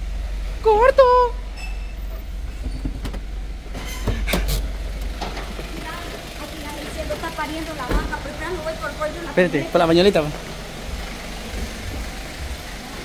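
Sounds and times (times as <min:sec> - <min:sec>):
vehicle engine rumbling: 0:00.0 - 0:13.0
voices: 0:00.6 - 0:02.4, 0:05.0 - 0:13.0.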